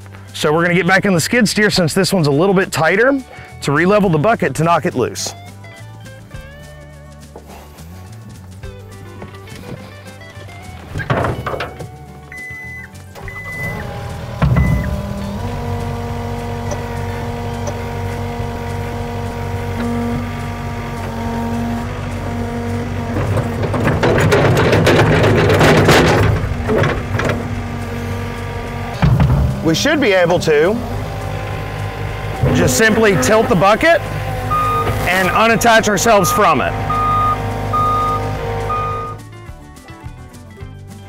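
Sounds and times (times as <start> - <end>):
loader engine running: 0.0 - 40.8
background music: 0.0 - 41.0
hydraulics tilting bucket: 8.8 - 39.2.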